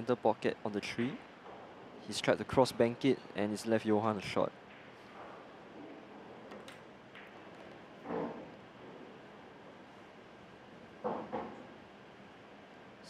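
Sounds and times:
pool balls clicking: 4.6 - 9.8.

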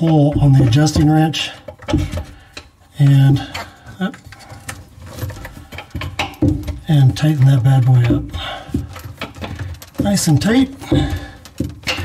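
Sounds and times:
man talking: 0.0 - 1.6, 2.9 - 4.2, 6.8 - 8.5, 10.0 - 11.3.

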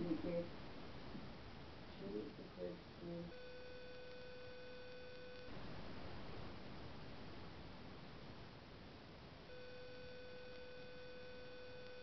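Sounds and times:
faint steady hiss: 0.0 - 12.0
steady electronic beep tone: 3.3 - 5.5, 9.5 - 12.0.

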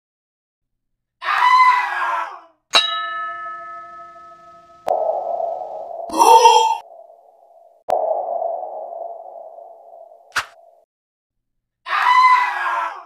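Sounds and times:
bright bell-like ding: 2.8 - 7.1.

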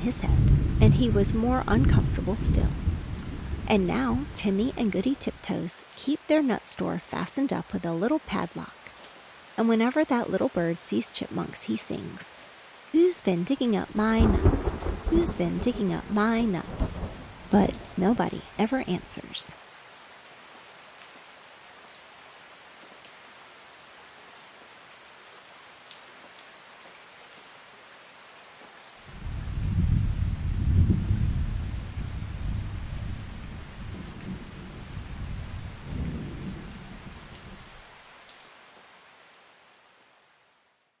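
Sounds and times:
steady rain hiss: 0.0 - 41.0
deep thunder rumble: 0.1 - 4.8, 14.0 - 18.1, 29.1 - 37.6.

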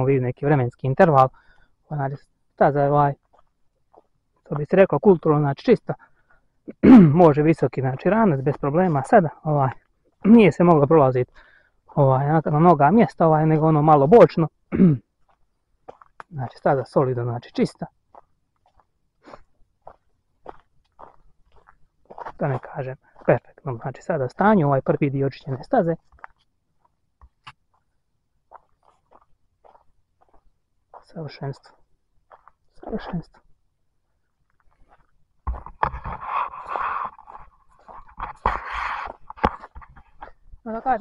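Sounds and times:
footsteps crunching on leaves: 18.1 - 23.3, 34.7 - 41.0.

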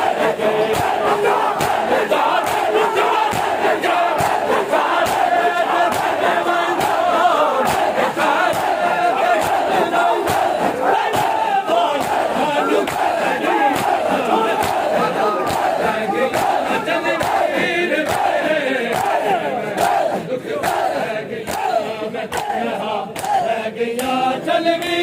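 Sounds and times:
crowd chanting and shouting: 0.0 - 25.0
hands beating on bare chests: 0.7 - 3.6.

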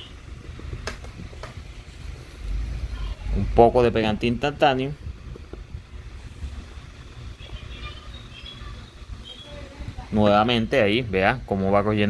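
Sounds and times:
low background rumble: 0.0 - 12.0
faint high chirps: 7.4 - 9.7.

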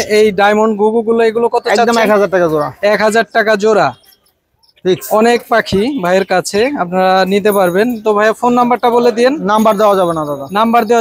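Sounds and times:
man talking: 0.0 - 4.2, 4.8 - 11.0.

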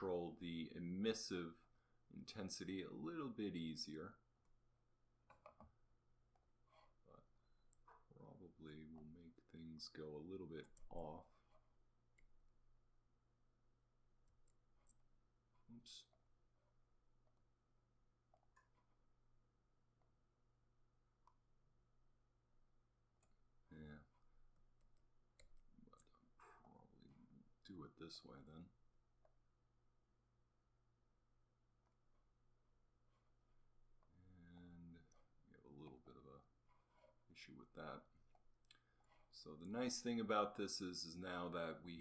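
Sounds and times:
low steady hum: 0.0 - 42.0.

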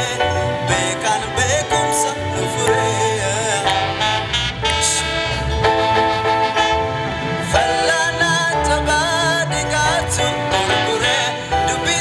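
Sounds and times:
live band music: 0.0 - 12.0
trumpets holding notes: 1.5 - 12.0.

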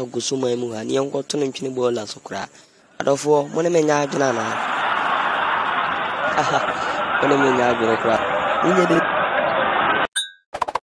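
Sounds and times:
crowd laughter and chatter: 3.6 - 10.1.

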